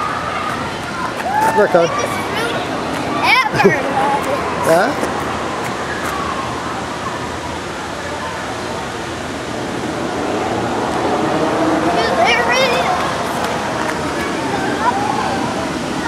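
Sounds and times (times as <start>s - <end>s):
faint voices: 0.0s - 16.0s
running water rushing: 0.0s - 16.0s.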